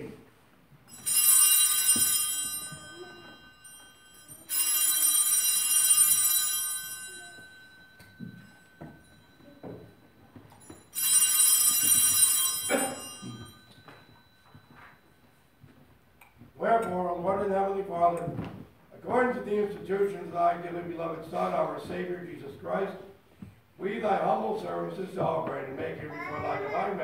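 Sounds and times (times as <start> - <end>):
bell ringing: 0.8 - 15.6.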